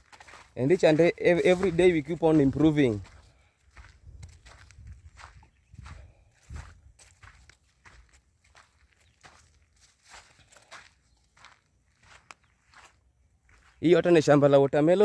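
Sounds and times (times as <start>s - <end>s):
footsteps on dry sandy soil: 0.0s - 15.0s.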